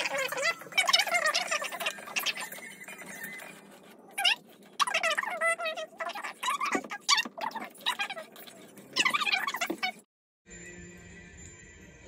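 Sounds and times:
high-pitched voice: 0.0s - 3.2s, 4.1s - 10.0s.

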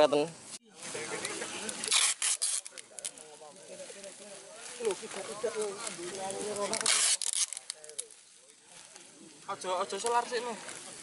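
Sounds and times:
plastic sheet rustling: 0.8s - 9.3s
packing tape rasping and pulling: 1.7s - 3.3s, 4.8s - 8.2s.

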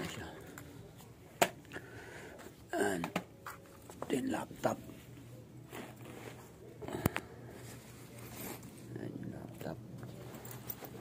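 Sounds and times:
fabric rustling: 4.8s - 6.8s, 7.5s - 9.0s, 10.0s - 11.0s.

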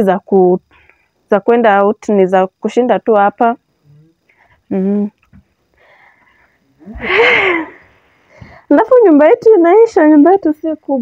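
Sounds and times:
faint breathing: 5.7s - 8.7s
breathy wheezing exhalation: 5.8s - 8.7s.

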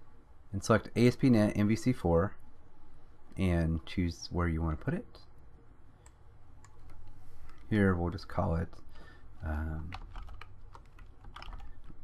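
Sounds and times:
low room noise: 0.0s - 12.0s
computer mouse clicks: 6.0s - 7.7s.

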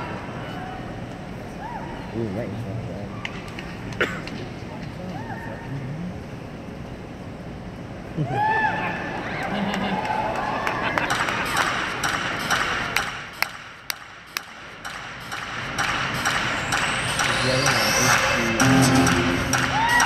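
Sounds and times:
crowd cheering and whistling: 8.3s - 11.6s, 16.2s - 20.0s
music over arena speakers: 11.0s - 20.0s.

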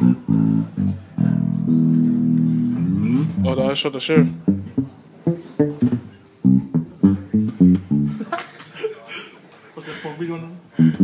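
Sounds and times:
electric bass guitar note sliding: 0.0s - 8.2s.

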